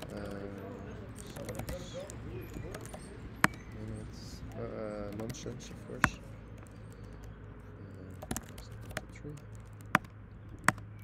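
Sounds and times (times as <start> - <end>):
computer keyboard clicks: 0.0 - 3.8, 4.5 - 11.0.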